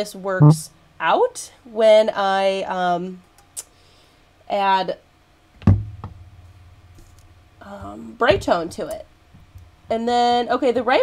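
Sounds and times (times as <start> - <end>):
low hum: 0.4 - 1.0
knock on work table: 5.7 - 6.2, 8.3 - 8.8.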